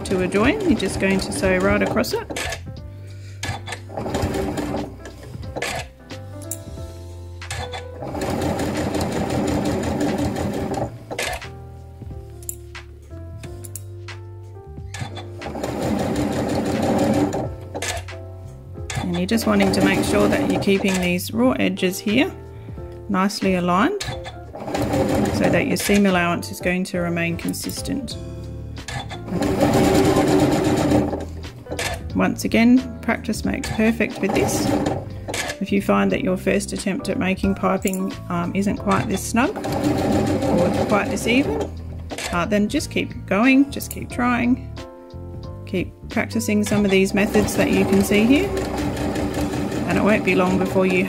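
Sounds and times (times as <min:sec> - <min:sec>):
sewing machine stitching: 0:00.0 - 0:02.6, 0:03.4 - 0:05.9, 0:07.5 - 0:11.4, 0:15.0 - 0:18.1, 0:18.9 - 0:21.2, 0:24.0 - 0:26.4, 0:28.9 - 0:32.0, 0:33.6 - 0:35.6, 0:38.9 - 0:42.4, 0:46.6 - 0:51.0
soft background music: 0:00.0 - 0:51.0.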